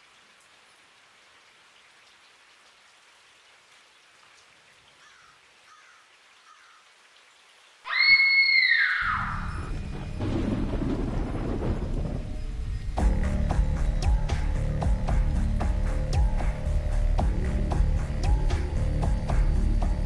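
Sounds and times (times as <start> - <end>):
long low rumble: 9.4 - 20.0.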